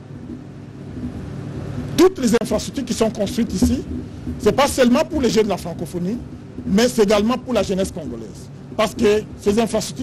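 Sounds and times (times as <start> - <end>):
low background rumble: 0.0 - 10.0
man speaking: 2.0 - 10.0.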